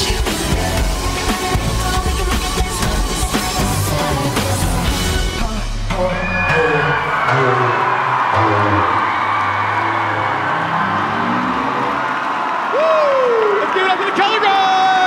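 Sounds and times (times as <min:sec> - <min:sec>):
recorded pop music: 0:00.0 - 0:10.4
crowd cheering and whooping: 0:06.0 - 0:15.0
people yelling: 0:06.2 - 0:15.0.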